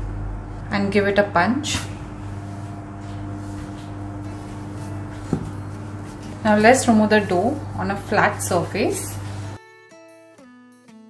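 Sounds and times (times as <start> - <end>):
steady low hum: 0.0 - 9.6.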